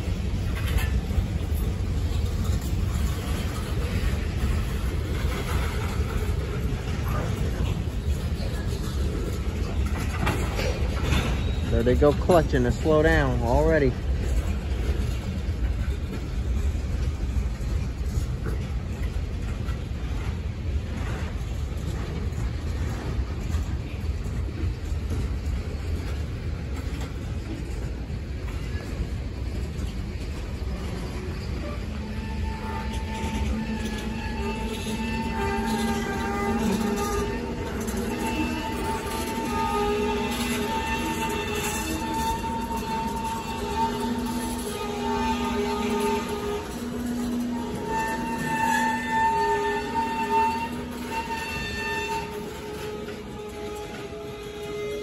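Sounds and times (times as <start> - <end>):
freight train wheels rumbling on rail: 0.0 - 55.0
train brakes squealing: 1.6 - 15.4, 30.5 - 55.0.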